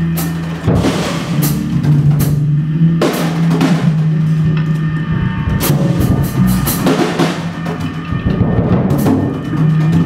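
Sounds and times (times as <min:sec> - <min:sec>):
drum kit hits: 0:00.0 - 0:04.6, 0:05.5 - 0:10.0
electric bass sustained note: 0:00.0 - 0:10.0.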